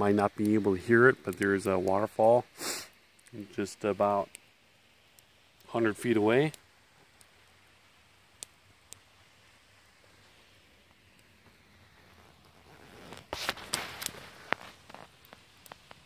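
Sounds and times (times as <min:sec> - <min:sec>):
faint waterfall rushing: 0:00.7 - 0:12.9
rustling: 0:10.0 - 0:16.0.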